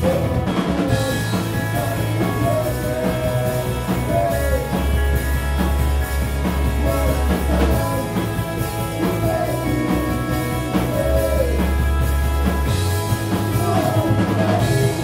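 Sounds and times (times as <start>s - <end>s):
man singing into a microphone: 0.0s - 4.9s, 6.8s - 11.8s, 13.5s - 15.0s
bass guitar: 0.0s - 15.0s
distorted electric guitars: 0.0s - 15.0s
drum kit: 0.0s - 15.0s.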